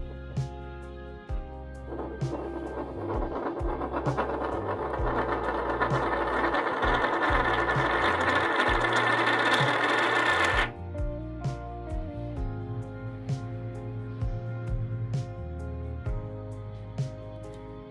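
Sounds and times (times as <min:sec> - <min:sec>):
music: 0:00.0 - 0:17.9
coin capsule spinning on a table: 0:01.8 - 0:10.7.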